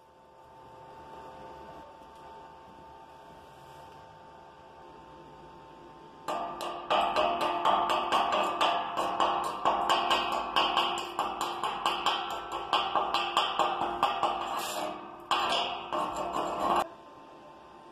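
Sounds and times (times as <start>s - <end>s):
hammer striking steel: 6.3s - 16.9s.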